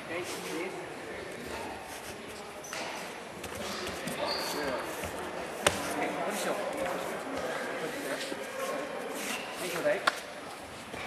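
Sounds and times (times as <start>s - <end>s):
murmur of voices in echoing hall: 0.0s - 11.0s.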